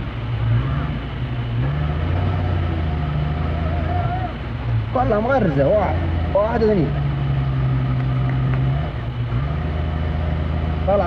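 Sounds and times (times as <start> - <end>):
engine revving hard: 0.0 - 11.0.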